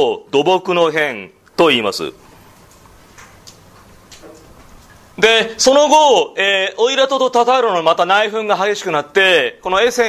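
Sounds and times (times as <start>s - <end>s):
soft clicks: 2.6s - 5.0s.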